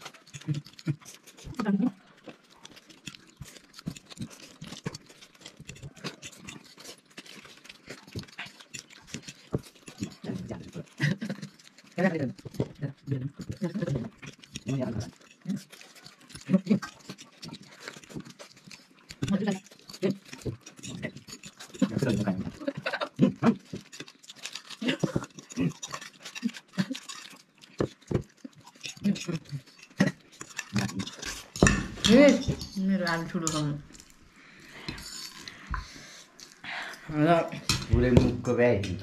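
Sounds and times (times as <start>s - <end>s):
noodles slurped and chewed: 0.0s - 39.0s
forks clicking against plates: 13.3s - 34.1s.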